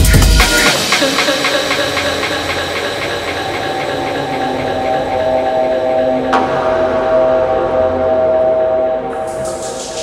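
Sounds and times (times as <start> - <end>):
sustained synth drone: 1.2 - 10.0.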